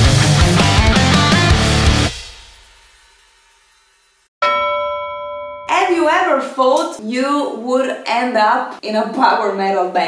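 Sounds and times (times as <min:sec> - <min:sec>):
music: 0:00.0 - 0:04.3
bell-like chime ringing: 0:04.4 - 0:05.9.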